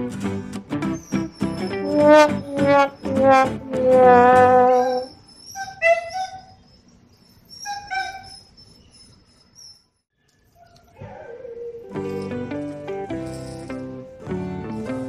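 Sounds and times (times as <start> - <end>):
dog whining in high yips: 0.9 - 9.8, 10.4 - 12.5
background music: 11.9 - 15.0.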